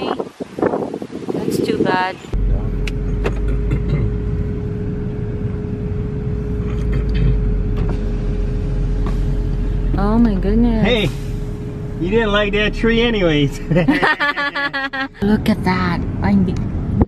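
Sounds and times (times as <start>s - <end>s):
car engine and road rumble: 0.0s - 17.0s
steady hum: 2.4s - 15.6s.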